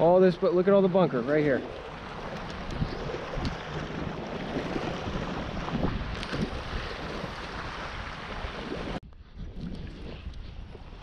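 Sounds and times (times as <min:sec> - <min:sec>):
small waves lapping: 0:00.0 - 0:09.0
wind on microphone: 0:01.5 - 0:11.0.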